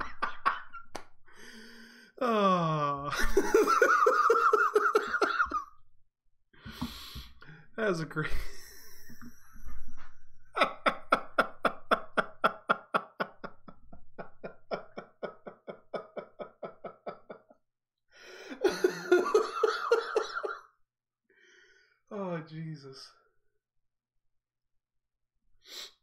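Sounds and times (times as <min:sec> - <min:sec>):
man laughing hard: 0:00.0 - 0:01.0, 0:02.2 - 0:05.7, 0:10.6 - 0:17.5, 0:18.5 - 0:20.6.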